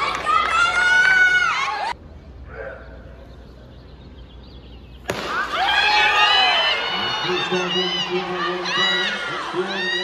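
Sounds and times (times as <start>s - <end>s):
crowd cheering and shouting: 5.2s - 10.0s.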